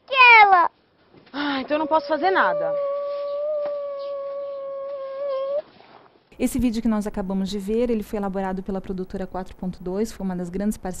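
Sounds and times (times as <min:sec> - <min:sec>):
boy crying wail: 0:01.8 - 0:05.6.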